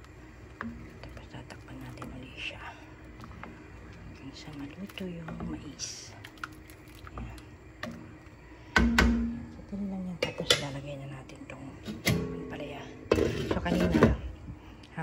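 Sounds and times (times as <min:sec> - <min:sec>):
metal spoon knocking pan: 0:08.8 - 0:09.5.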